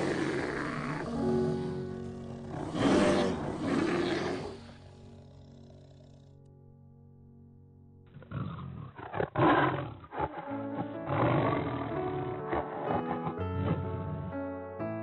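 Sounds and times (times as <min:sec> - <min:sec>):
quiet background music: 0:00.0 - 0:15.0.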